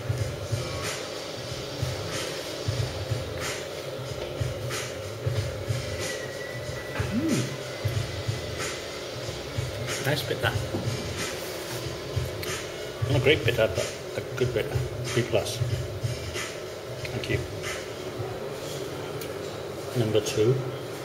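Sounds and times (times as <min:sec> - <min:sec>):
steady hum: 0:00.0 - 0:19.2.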